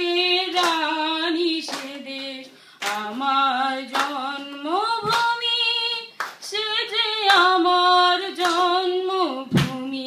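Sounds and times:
woman singing unaccompanied: 0:00.0 - 0:10.0
hand claps: 0:00.5 - 0:00.9, 0:01.6 - 0:03.1, 0:03.8 - 0:05.4, 0:06.2 - 0:06.5, 0:08.4 - 0:08.8, 0:09.5 - 0:09.8.

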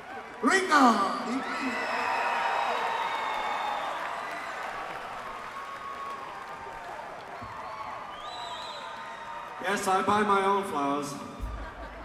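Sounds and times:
audience applauding and cheering: 0:00.0 - 0:12.0.

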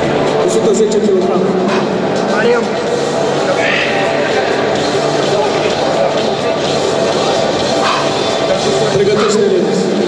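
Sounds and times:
people's voices: 0:00.2 - 0:10.0.

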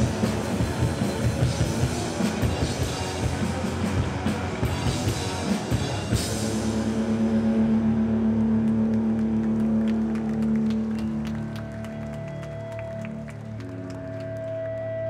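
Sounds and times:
electric guitar chord ringing: 0:00.0 - 0:13.1
steady higher tone: 0:01.8 - 0:12.1.

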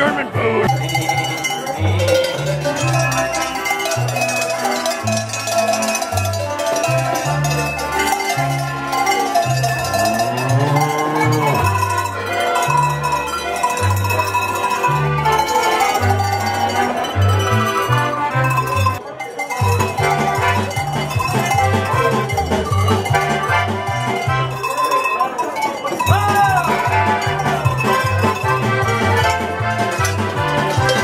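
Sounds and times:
accordion bass notes: 0:00.0 - 0:24.9, 0:26.0 - 0:31.0
hand bells ringing tune: 0:00.7 - 0:31.0.

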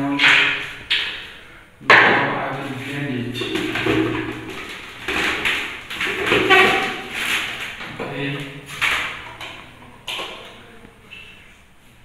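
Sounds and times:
plastic knocks and scrapes: 0:01.9 - 0:10.5.

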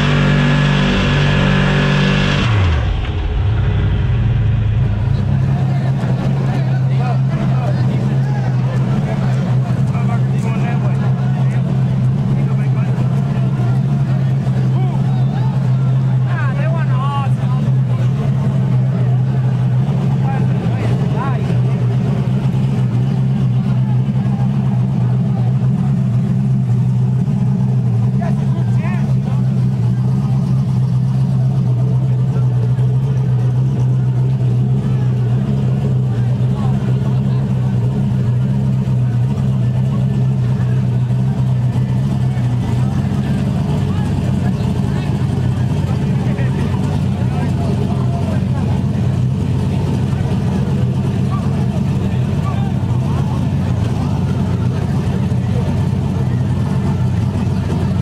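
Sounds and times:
people talking: 0:00.0 - 0:58.0
truck engine idling loudly: 0:00.0 - 0:58.0.

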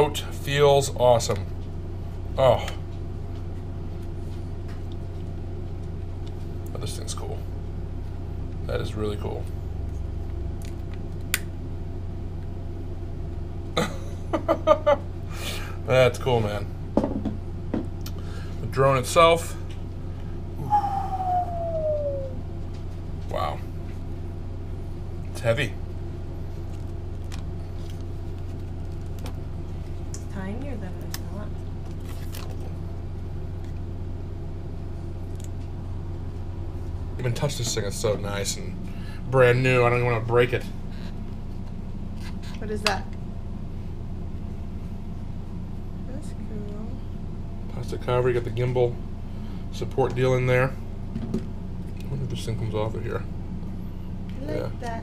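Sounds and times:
low hum: 0:00.0 - 0:55.0
person laughing: 0:13.8 - 0:15.1.

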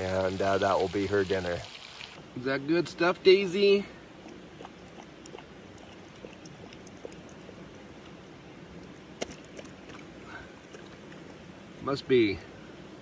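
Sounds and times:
dog eating from metal bowl: 0:04.1 - 0:10.1.

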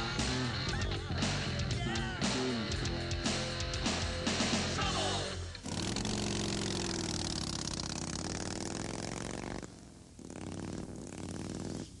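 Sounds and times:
motorcycle engine revving: 0:00.0 - 0:04.8, 0:05.4 - 0:12.0.

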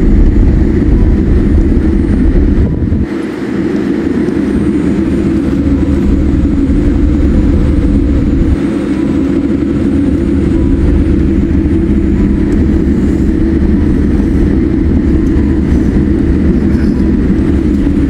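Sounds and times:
aircraft engine noise in cabin: 0:00.0 - 0:18.0
wheel rumble: 0:00.0 - 0:18.0.

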